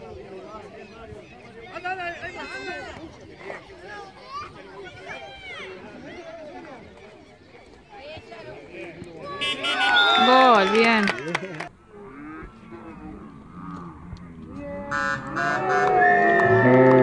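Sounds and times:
spectators shouting and cheering: 0:09.0 - 0:11.7.

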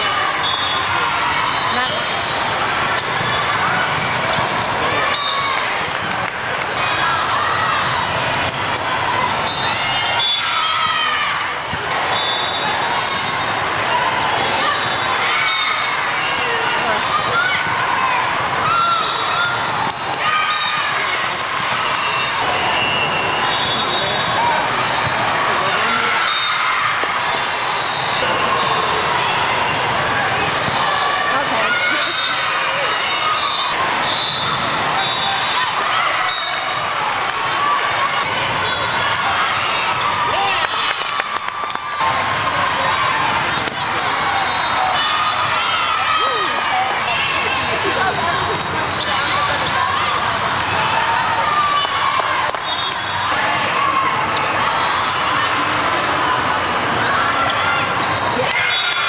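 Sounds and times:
crowd talking and calling out: 0:00.0 - 0:59.0
volleyballs struck and bouncing: 0:03.0 - 0:04.8, 0:43.3 - 0:44.1.

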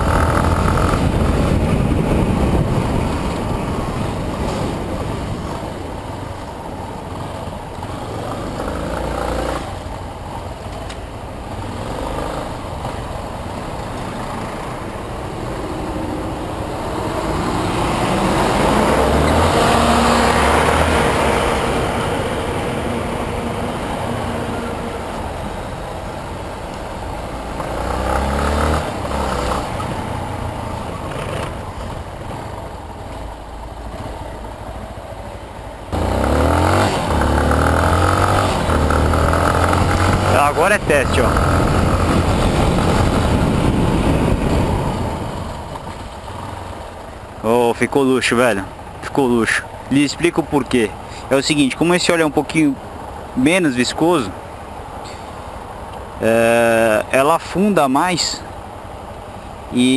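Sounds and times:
motorcycle engine revving: 0:00.0 - 0:05.6, 0:07.0 - 0:10.0, 0:11.4 - 0:25.2, 0:27.4 - 0:32.7, 0:35.9 - 0:46.8
wind noise: 0:00.0 - 0:06.8, 0:35.9 - 0:46.2
traffic noise: 0:00.0 - 0:59.9.

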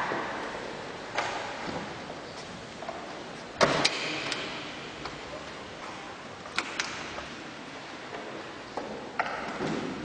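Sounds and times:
background noise: 0:00.0 - 0:10.0.

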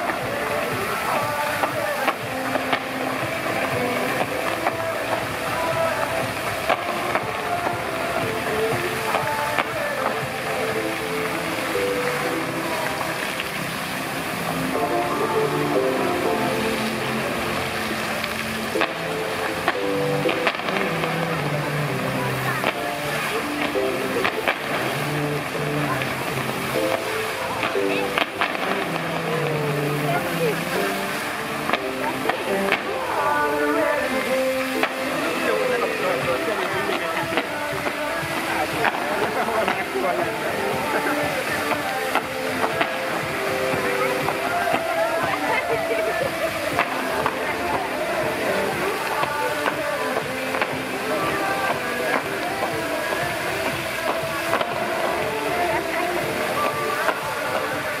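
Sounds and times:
fountain water jets hissing: 0:00.0 - 0:58.0
pop music over loudspeakers: 0:00.0 - 0:58.0.

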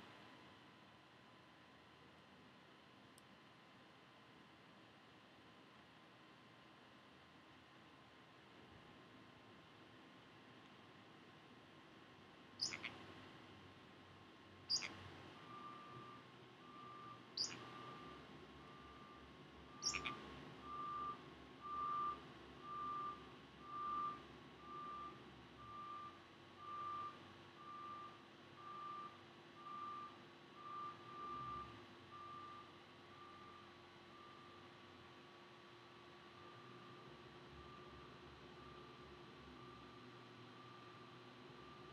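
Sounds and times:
parrot high chirps: 0:12.6 - 0:13.0, 0:14.7 - 0:15.0, 0:17.4 - 0:17.7, 0:19.8 - 0:20.2
vehicle reversing alarm beeps: 0:14.7 - 0:35.1, 0:36.2 - 0:41.9.

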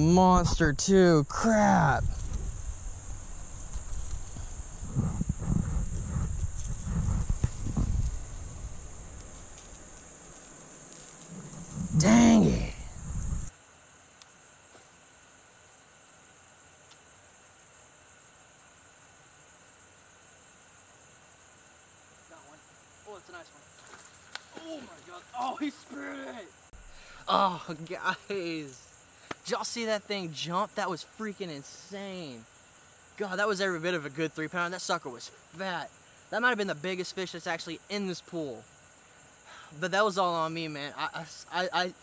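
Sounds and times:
high insect drone: 0:00.0 - 0:42.0
microphone handling rumble: 0:01.8 - 0:10.0, 0:11.1 - 0:13.5
man groaning loudly: 0:11.8 - 0:12.9.

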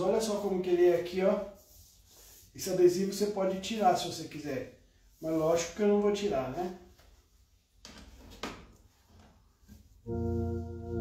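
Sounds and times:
electronic organ chord: 0:10.1 - 0:11.0.

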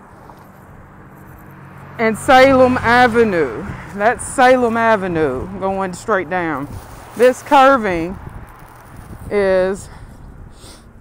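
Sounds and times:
hum of road traffic: 0:00.0 - 0:11.0.

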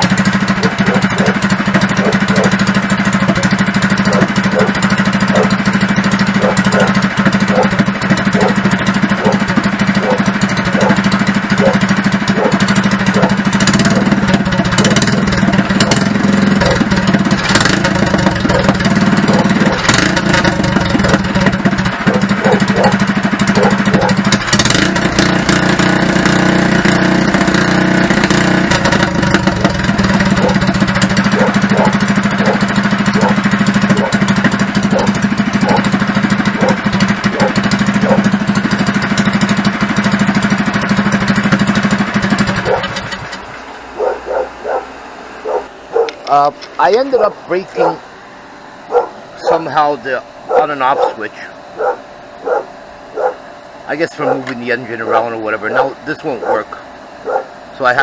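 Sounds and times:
go-kart engine running: 0:00.0 - 0:58.0.

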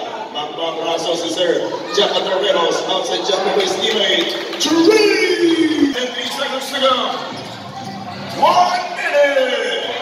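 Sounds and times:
person calling out: 0:04.8 - 0:06.0.

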